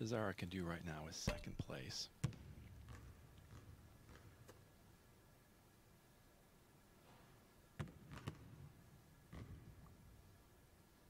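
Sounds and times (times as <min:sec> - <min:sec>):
basketball bouncing on hardwood floor: 0:02.2 - 0:04.6, 0:07.8 - 0:08.6, 0:09.3 - 0:09.8.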